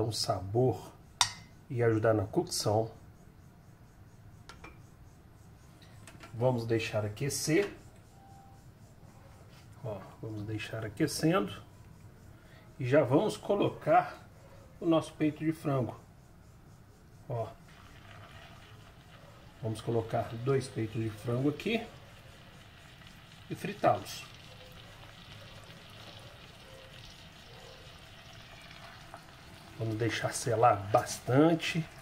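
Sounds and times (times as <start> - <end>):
metal spoon tapping saucepan: 1.2 - 1.5
chicken frying in oil: 17.6 - 32.0.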